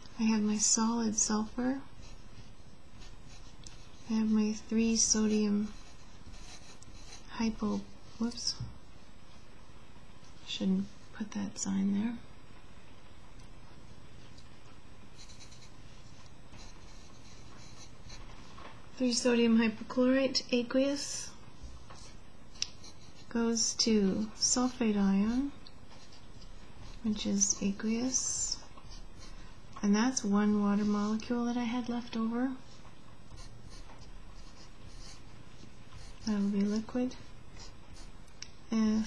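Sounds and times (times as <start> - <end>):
steady low hum: 0.0 - 39.0
marker writing on paper: 1.3 - 7.6, 15.2 - 18.3, 21.9 - 23.3, 32.6 - 38.2.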